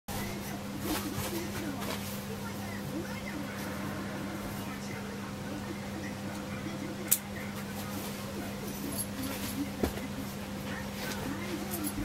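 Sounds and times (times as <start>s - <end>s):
faint voices: 0.1s - 12.0s
steady low hum: 0.1s - 12.0s.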